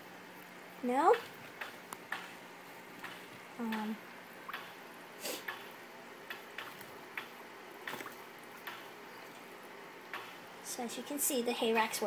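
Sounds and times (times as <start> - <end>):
faint steady hiss: 0.0 - 12.0
small drips and splashes: 0.4 - 10.5.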